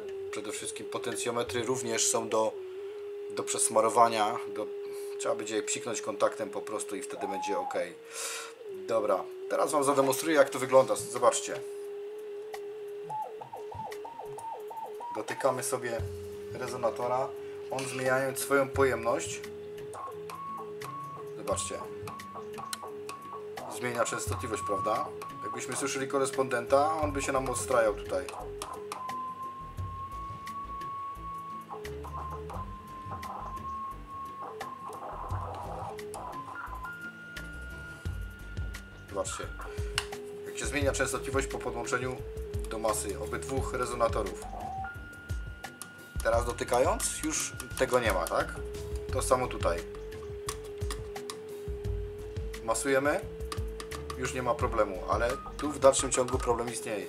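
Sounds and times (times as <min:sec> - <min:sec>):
radio whistle tone wavering in pitch: 0:00.0 - 0:57.0.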